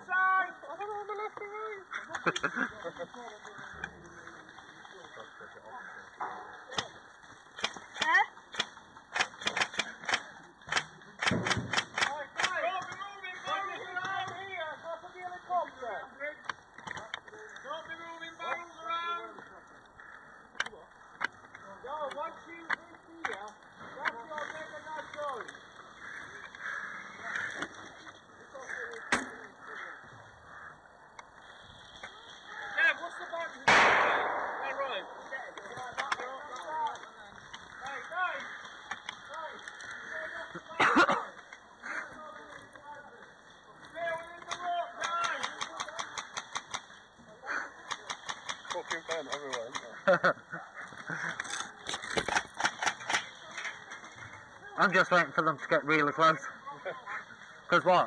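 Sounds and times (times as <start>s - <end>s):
airsoft guns firing: 6.7s - 12.9s, 33.6s - 36.3s, 44.5s - 47.0s, 47.8s - 49.8s, 51.9s - 53.4s
loud bangs: 33.7s - 35.6s.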